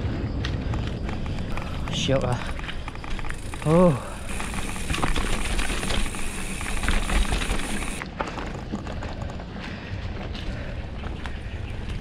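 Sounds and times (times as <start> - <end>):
bike tyres on dirt trail: 0.0 - 12.0
bike rattles and knocks: 0.6 - 9.7.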